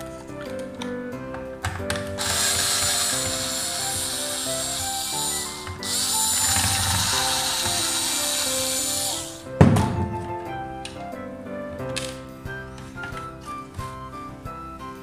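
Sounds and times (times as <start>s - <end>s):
electric screwdriver running: 2.1s - 9.4s.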